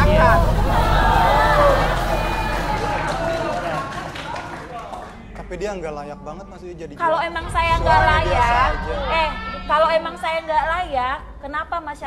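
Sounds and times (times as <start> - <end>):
louder voices exchanging: 0.0 - 4.9
murmured speech: 0.0 - 5.6.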